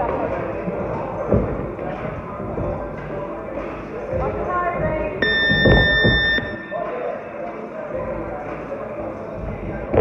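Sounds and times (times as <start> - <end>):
timer buzzer tone: 5.2 - 7.0.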